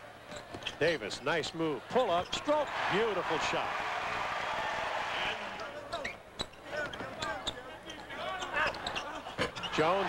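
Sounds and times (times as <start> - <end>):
arena crowd noise: 0.0 - 10.0.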